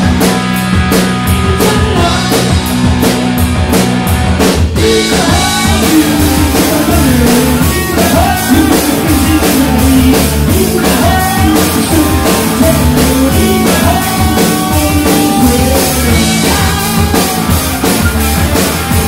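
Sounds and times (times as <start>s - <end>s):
drum kit: 0.0s - 19.0s
electric guitars: 0.0s - 19.0s
rock band playing: 0.0s - 19.0s
person singing: 1.4s - 2.5s, 4.8s - 17.3s.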